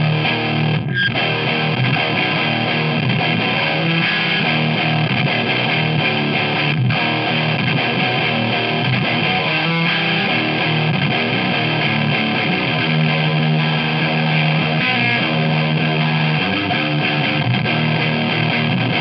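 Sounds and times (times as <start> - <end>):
distorted electric guitar chords: 0.0 - 19.0.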